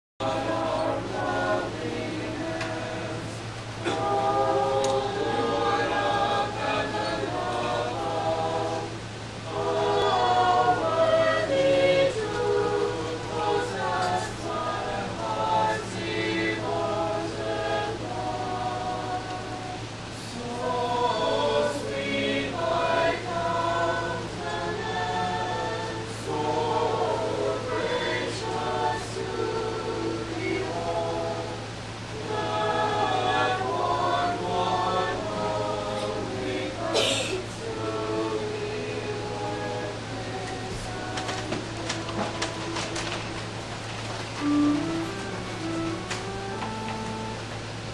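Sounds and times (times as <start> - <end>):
choir singing a hymn: 0.2 - 47.9
steady low hum: 0.2 - 47.9.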